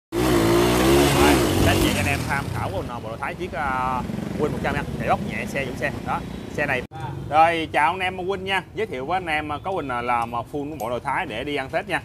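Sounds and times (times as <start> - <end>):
two-stroke motorcycle passing: 0.1 - 7.5.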